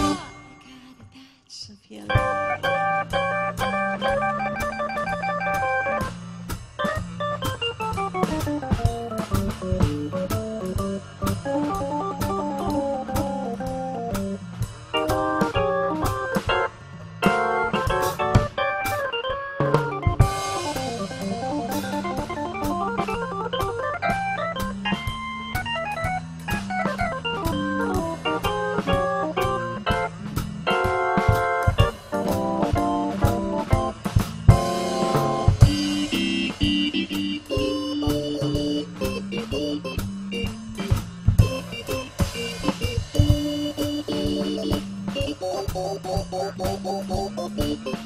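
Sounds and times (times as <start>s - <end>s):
drum kit with cymbals: 0.0s - 1.2s, 1.9s - 48.0s
organ playing jazz-blues solo: 2.2s - 48.0s.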